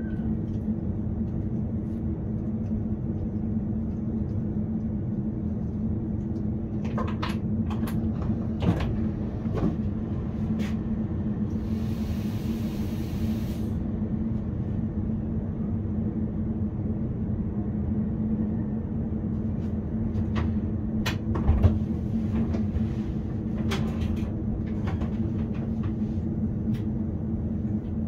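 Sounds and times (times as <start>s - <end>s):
electric train hum: 0.0s - 28.0s
hiss: 11.5s - 13.8s.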